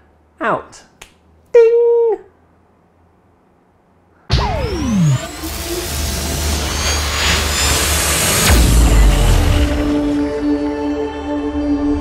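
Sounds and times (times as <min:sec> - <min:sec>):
low boom: 0:04.3 - 0:10.5
deep rumble: 0:04.3 - 0:11.0
downward-swooping tone: 0:04.3 - 0:12.0.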